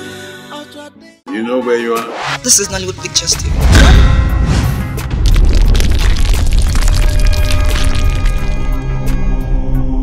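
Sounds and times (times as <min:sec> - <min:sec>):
deep booming bass hits: 0:03.5 - 0:08.5.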